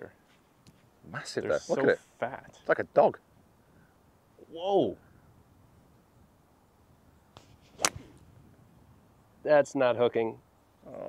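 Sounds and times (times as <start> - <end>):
golf club striking ball: 7.8 - 8.2.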